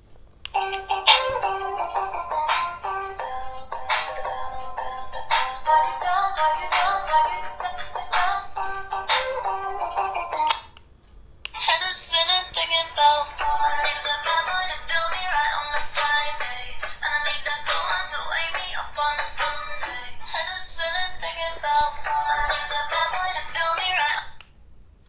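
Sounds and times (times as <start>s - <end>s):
backing music from small speaker: 0.5s - 10.8s, 11.5s - 24.4s.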